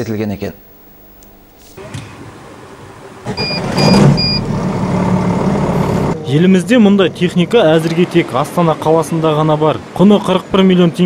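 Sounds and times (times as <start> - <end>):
truck engine running: 3.3 - 7.7
short high electronic beeps: 3.4 - 4.4.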